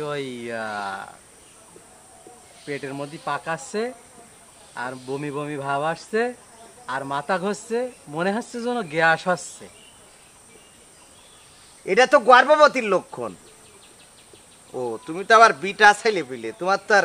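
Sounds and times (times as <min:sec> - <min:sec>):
man speaking: 0:00.0 - 0:09.8, 0:11.8 - 0:13.5, 0:14.7 - 0:17.0.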